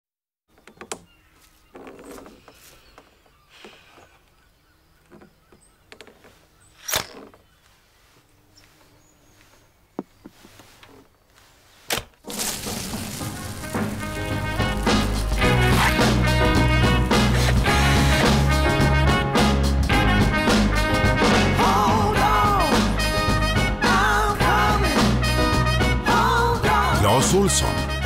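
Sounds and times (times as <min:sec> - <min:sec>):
rummaging through toolbox: 0:12.2 - 0:16.1
music: 0:12.4 - 0:28.0.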